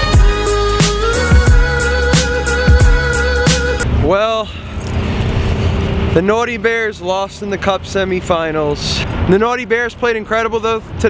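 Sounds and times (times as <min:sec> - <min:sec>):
road traffic rumble: 0:00.4 - 0:11.0.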